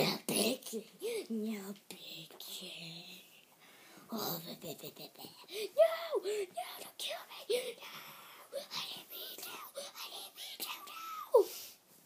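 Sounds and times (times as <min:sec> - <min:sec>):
person whispering: 0:00.0 - 0:03.4, 0:04.1 - 0:11.5.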